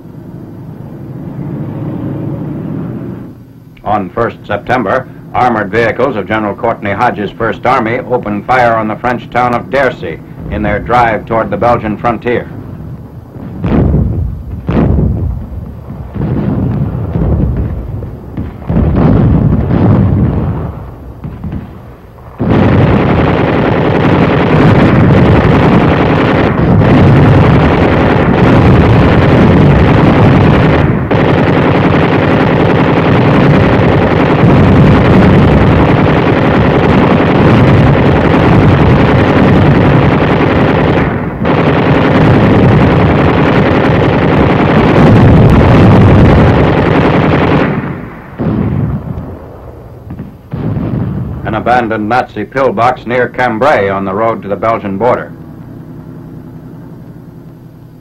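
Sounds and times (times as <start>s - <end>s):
explosions: 0.7s - 56.2s
heavy gunfire: 3.9s - 57.1s.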